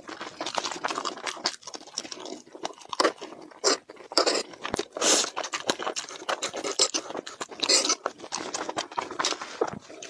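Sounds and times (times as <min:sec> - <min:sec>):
wet chewing of jelly: 0:00.0 - 0:10.0.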